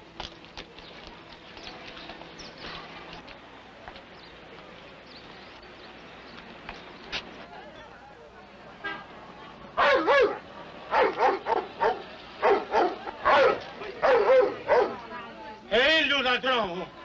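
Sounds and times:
dog barking: 9.8 - 15.0.

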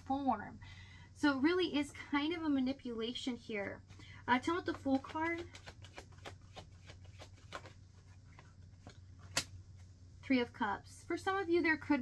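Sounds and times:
cards being shuffled: 3.9 - 9.9
sharp card snap: 9.3 - 9.6.

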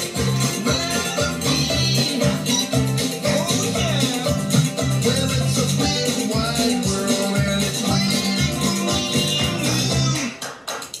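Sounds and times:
theme song with guitar: 0.0 - 10.6.

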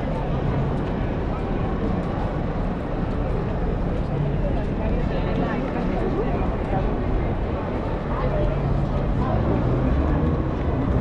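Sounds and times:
passers-by talking: 0.0 - 11.0
traffic rumble: 0.0 - 11.0.

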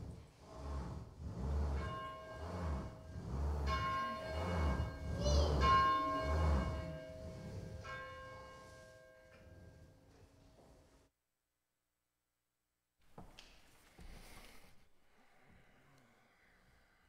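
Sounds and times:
bell ringing: 1.9 - 9.4.

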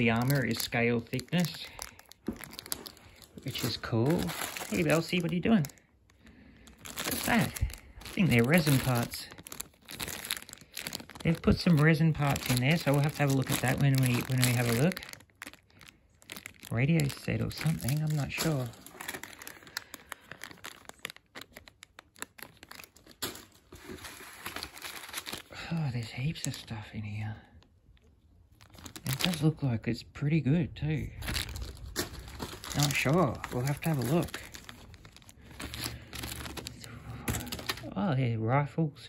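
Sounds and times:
plastic bags crinkling: 0.0 - 27.2, 28.0 - 29.6, 31.0 - 38.0.

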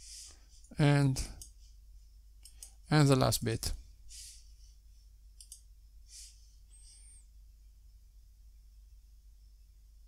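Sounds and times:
computer mouse clicks: 2.4 - 2.8, 5.4 - 5.7.

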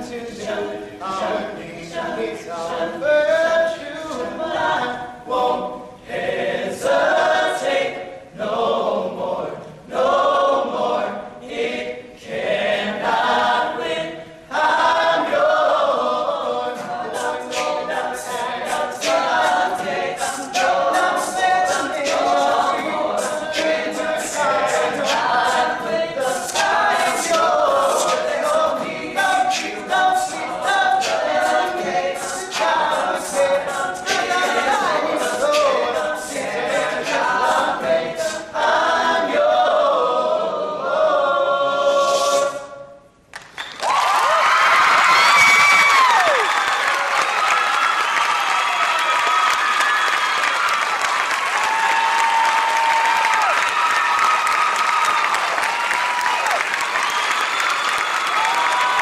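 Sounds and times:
male a cappella singing: 0.0 - 42.8
audience applause and cheering: 43.4 - 59.0.

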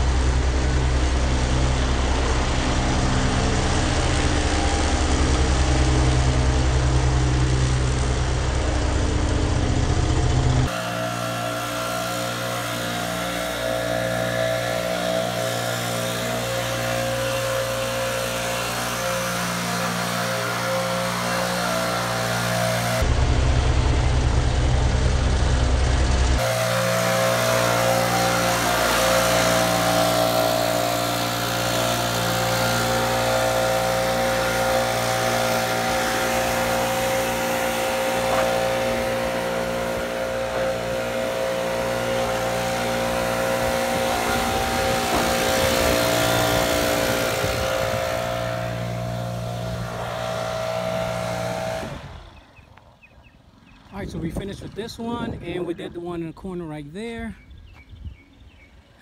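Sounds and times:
leaf blower running: 0.0 - 52.9
mower engine running: 0.0 - 55.9.

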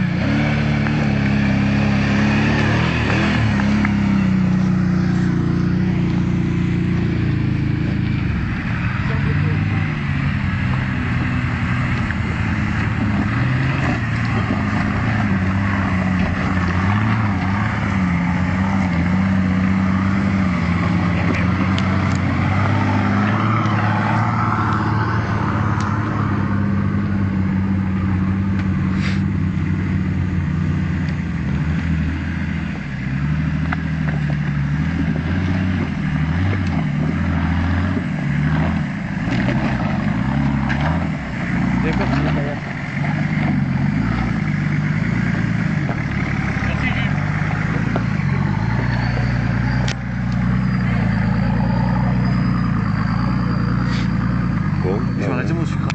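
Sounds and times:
suv engine under load: 0.0 - 55.9.

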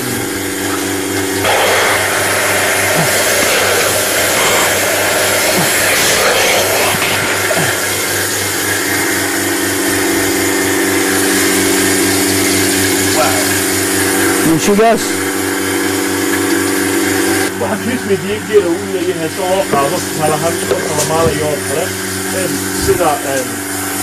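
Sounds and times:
milking machine motor drone: 0.0 - 24.0.

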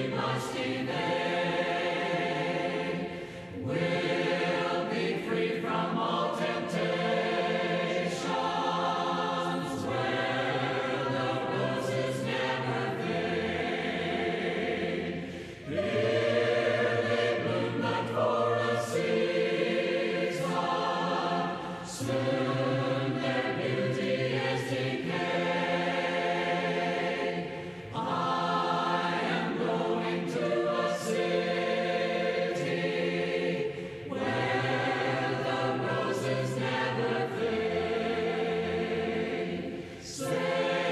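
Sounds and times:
choir singing a hymn: 0.0 - 40.9.

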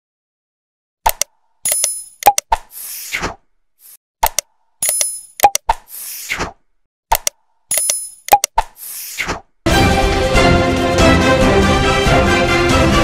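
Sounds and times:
sharp clicks: 1.0 - 2.8, 3.8 - 6.1, 7.1 - 9.0.

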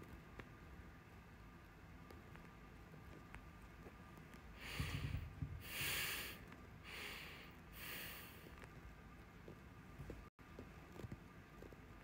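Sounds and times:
woman breathing through nose: 4.6 - 8.5.

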